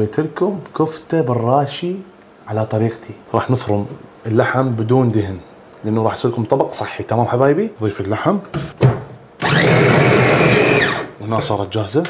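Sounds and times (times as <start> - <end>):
electric food chopper running: 9.4 - 11.2.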